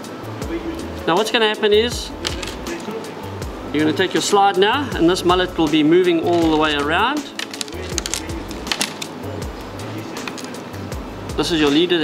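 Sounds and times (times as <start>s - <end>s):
plastic spool clicking and rattling: 7.3s - 9.1s.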